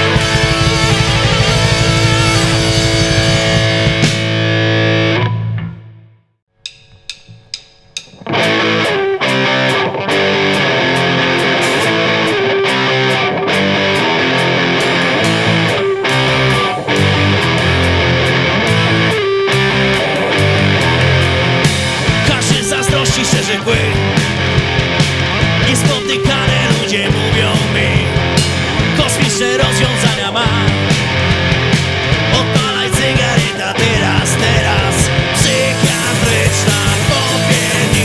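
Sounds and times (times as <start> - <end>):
drums playing: 0.0 - 4.9, 6.5 - 38.0
bass guitar: 0.0 - 6.3, 7.0 - 38.0
distorted electric guitars: 0.0 - 38.0.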